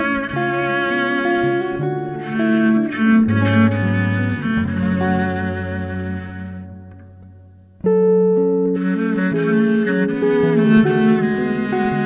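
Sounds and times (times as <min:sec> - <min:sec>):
bowed viola: 0:00.0 - 0:12.0
fingerpicked archtop guitar: 0:00.0 - 0:12.0.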